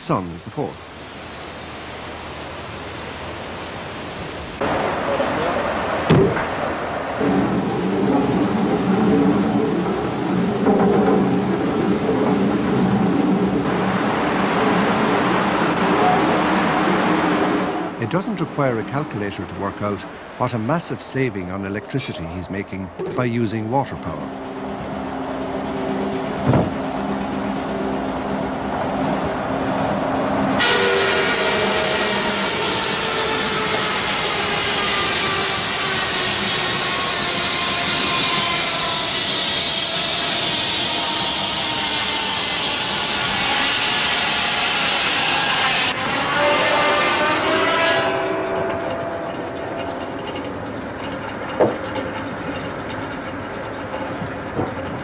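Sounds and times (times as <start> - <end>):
saw machinery humming: 7.2 - 54.5
saw blade cutting log: 30.6 - 48.5.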